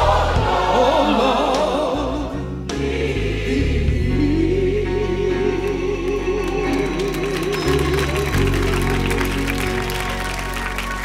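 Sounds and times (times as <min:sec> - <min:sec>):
low musical accompaniment: 0:00.0 - 0:11.0
woman singing gospel: 0:03.5 - 0:09.1.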